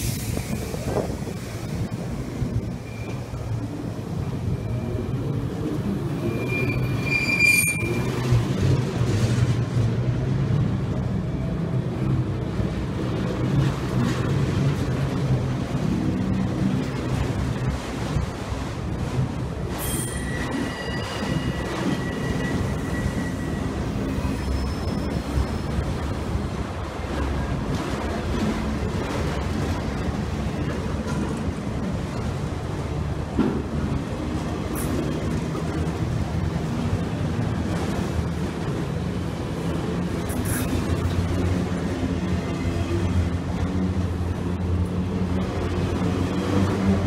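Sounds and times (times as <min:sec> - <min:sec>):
train wheels rumbling on rail: 0:00.0 - 0:47.0
high wheel squeals: 0:02.8 - 0:03.4, 0:06.1 - 0:08.3, 0:19.8 - 0:25.8.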